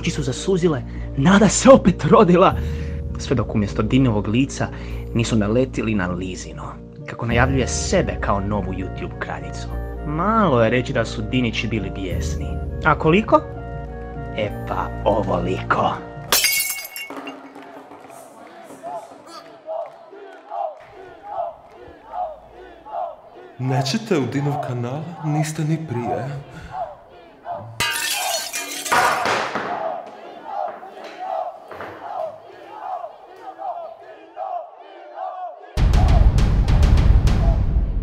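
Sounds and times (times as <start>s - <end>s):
window glass smashing: 16.3s - 17.5s, 27.8s - 29.6s
crowd shouting angrily: 17.5s - 27.9s, 29.1s - 36.5s
loud music with heavy drums: 35.8s - 38.0s.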